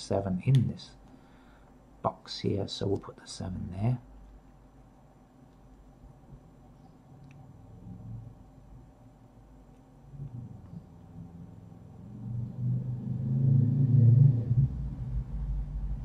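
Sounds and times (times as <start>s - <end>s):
low rumble: 10.1s - 16.0s.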